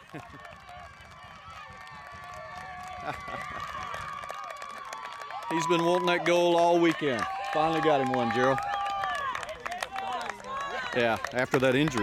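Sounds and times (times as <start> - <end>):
distant shouting and cheering: 0.4 - 12.0.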